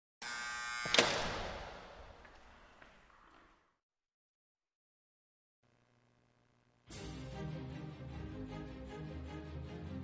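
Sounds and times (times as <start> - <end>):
electric buzz: 0.2 - 1.5.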